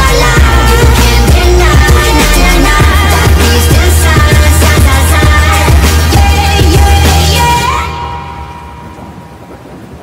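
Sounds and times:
rain: 5.3 - 10.0
thunder: 8.7 - 10.0.

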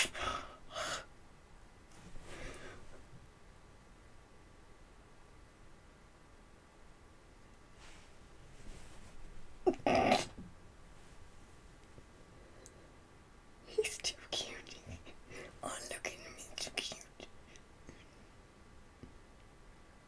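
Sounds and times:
breathy excited sounds: 0.0 - 1.1
woman whispering: 13.6 - 17.4.

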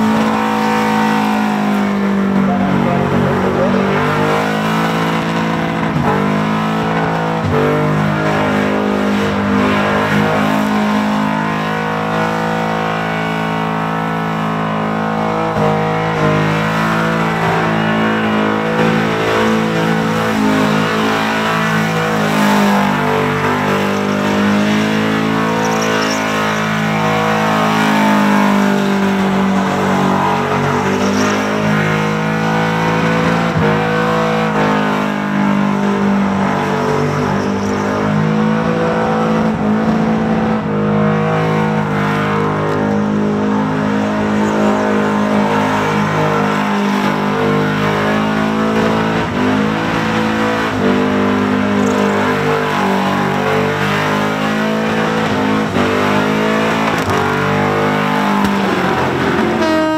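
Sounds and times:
engine revving high: 0.0 - 59.9.

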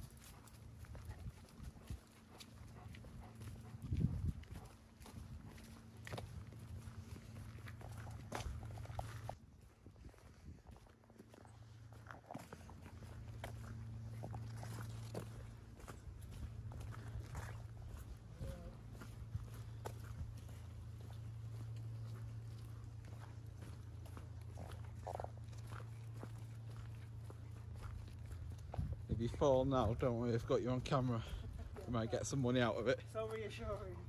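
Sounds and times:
footsteps on dirt and leaves: 0.0 - 34.0
steady low hum: 0.0 - 34.0.

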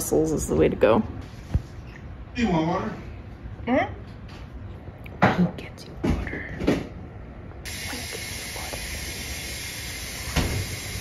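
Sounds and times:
steam wand hissing: 7.7 - 11.0.

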